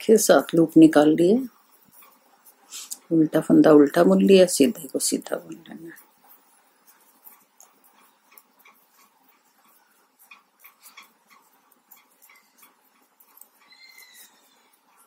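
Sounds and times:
knitting needles clicking: 4.2s - 15.0s.

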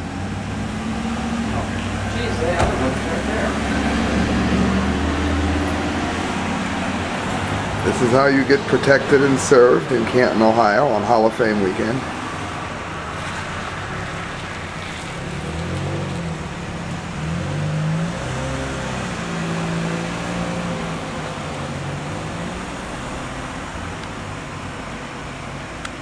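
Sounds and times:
car driving past: 0.0s - 25.6s
road noise: 0.0s - 26.0s.

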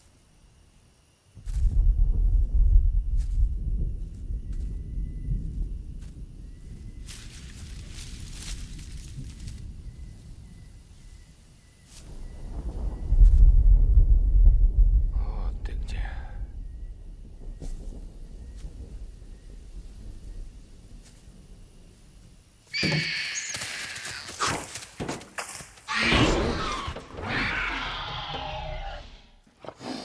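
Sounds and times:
deep low rumble: 1.4s - 10.8s, 12.1s - 22.2s.

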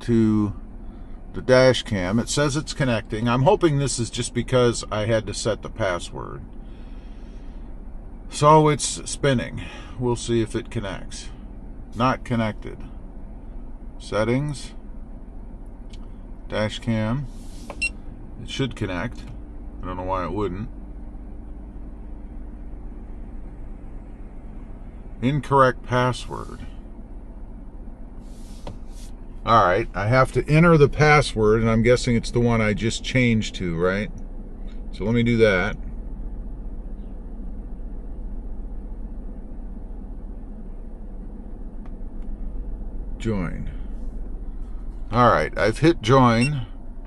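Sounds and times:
faint constant tone: 0.0s - 47.0s
low hum inside car cab: 0.0s - 47.0s.

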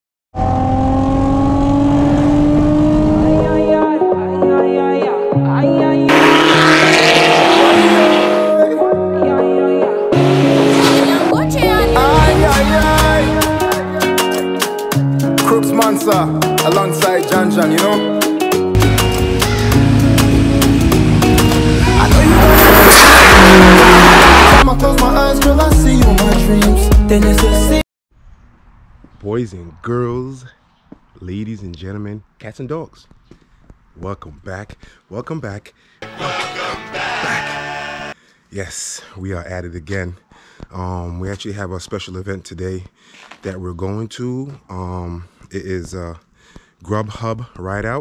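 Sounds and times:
car engine revving high: 0.4s - 3.6s, 6.1s - 8.6s, 10.1s - 11.3s, 19.2s - 24.6s
music: 3.2s - 27.8s, 36.0s - 38.2s.

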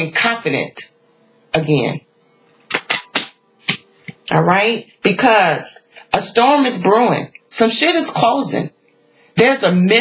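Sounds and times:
cards clicking on table: 2.7s - 3.8s.

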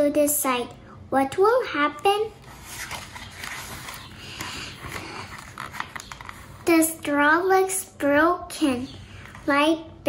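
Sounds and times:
book page turning: 2.4s - 6.7s.

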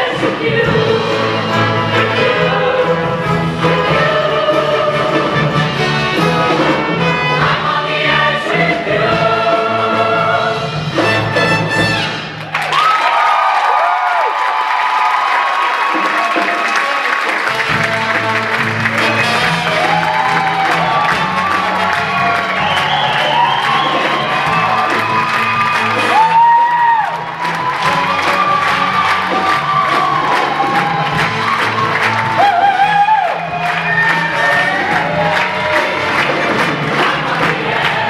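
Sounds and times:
choir singing: 0.0s - 11.0s, 34.3s - 38.0s
live band with horns: 0.0s - 12.6s, 15.5s - 38.0s
audience cheering and whooping: 12.4s - 17.6s, 18.6s - 38.0s.

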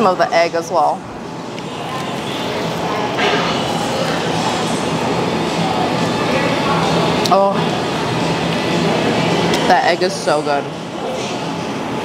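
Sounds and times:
ventilation rush: 0.0s - 12.0s.

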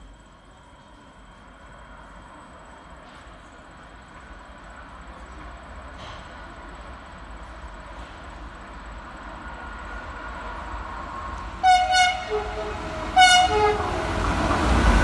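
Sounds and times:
electric locomotive running: 0.0s - 15.0s
locomotive horn blast: 11.6s - 14.4s.

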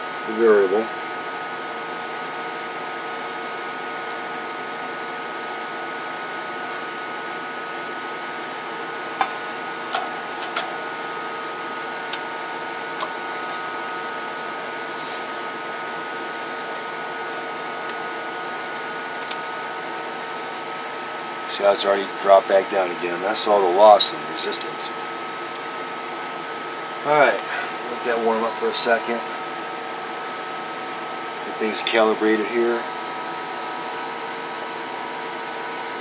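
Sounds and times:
electronics whirring hum: 0.0s - 36.0s.

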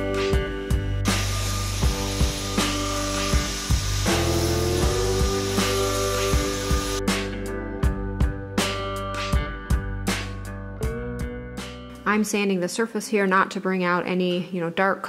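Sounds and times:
guitar music: 0.0s - 12.2s
cordless vacuum running: 1.1s - 7.0s.

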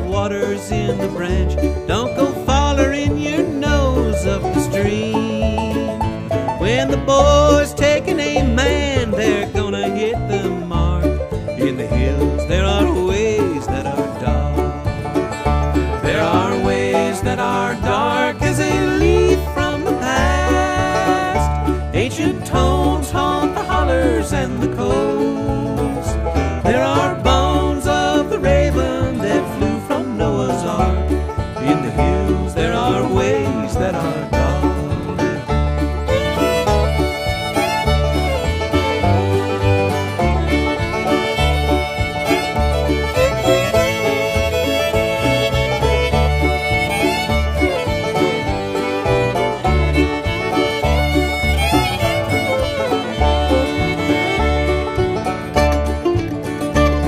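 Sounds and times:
banjo: 0.0s - 57.0s
bass beat: 0.0s - 57.0s
fiddle: 0.0s - 57.0s
guitar: 0.0s - 57.0s.

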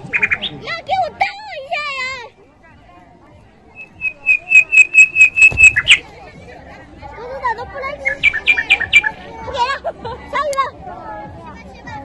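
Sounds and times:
high bird-like chirps: 0.0s - 0.6s, 3.8s - 6.0s, 8.0s - 9.2s
voices: 0.0s - 12.0s.

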